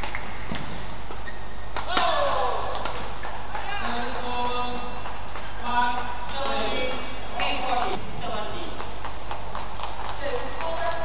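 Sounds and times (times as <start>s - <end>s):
quick footsteps: 7.7s - 11.0s.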